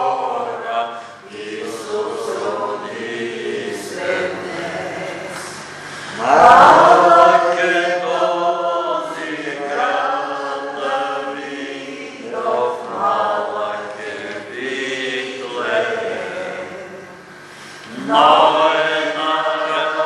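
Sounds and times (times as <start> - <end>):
congregation singing: 0.0 - 20.0.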